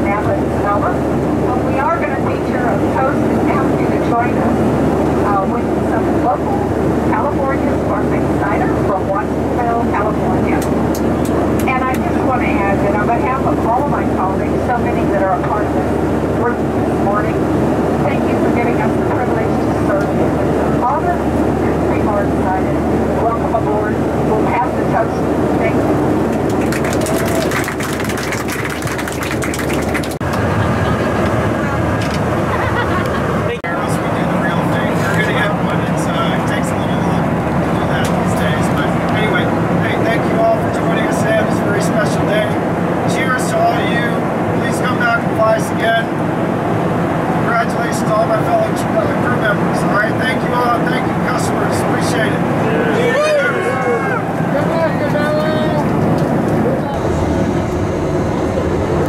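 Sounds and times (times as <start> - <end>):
speech over public-address system: 0.0 - 10.8, 11.6 - 25.8, 33.4 - 46.1, 47.4 - 56.0
airplane cabin drone: 0.0 - 59.0
rush of noise: 0.0 - 59.0.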